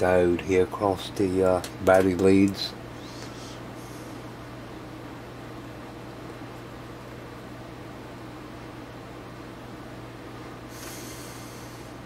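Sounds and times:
low electrical hum: 0.0 - 12.0
sniff through the nose: 10.7 - 12.0.

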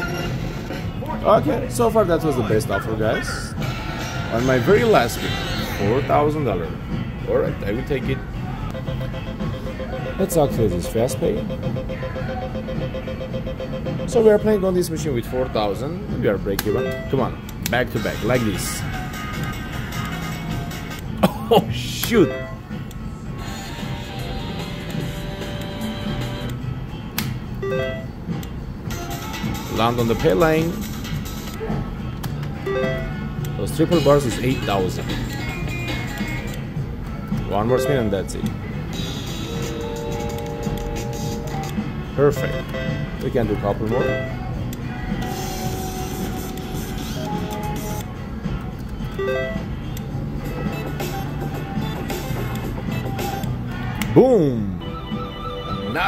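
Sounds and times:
steady musical background: 0.0 - 56.0
slot machine electronic spin tune: 2.7 - 6.2, 8.8 - 14.7, 27.6 - 28.2, 37.6 - 38.3, 39.0 - 43.2, 43.9 - 44.5, 54.6 - 56.0
slot machine reels spinning: 3.6 - 6.2, 45.2 - 48.0.

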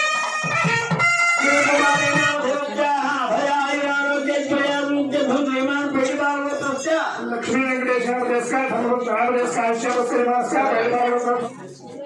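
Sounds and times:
reed wind instrument melody: 0.0 - 2.8.

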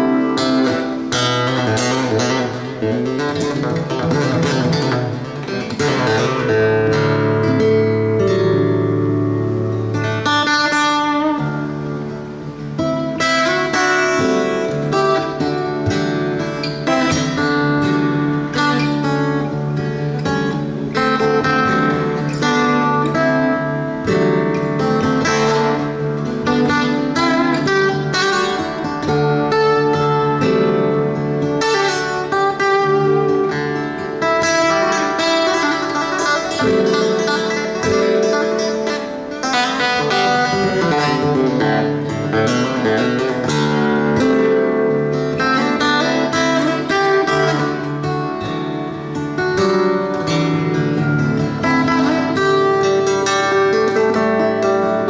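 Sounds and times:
fingerstyle acoustic guitar: 0.0 - 55.0.

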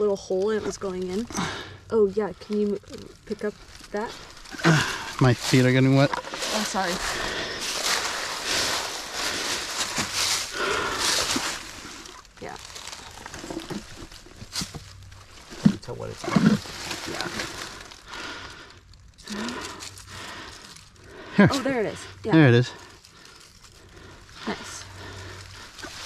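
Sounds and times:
hands digging in dry leaves: 0.0 - 26.0.

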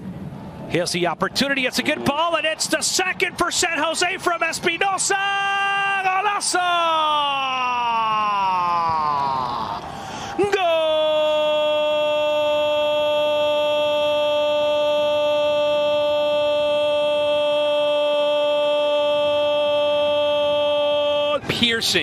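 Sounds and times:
commentator shouting goal call: 0.8 - 9.2, 10.4 - 22.0.

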